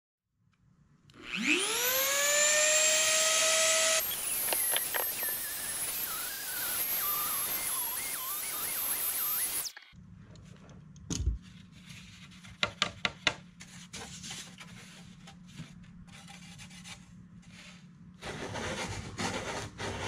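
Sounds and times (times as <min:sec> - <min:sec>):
rotary tool routing wood: 0:01.1 - 0:09.8
rotary tool whining: 0:01.1 - 0:10.0.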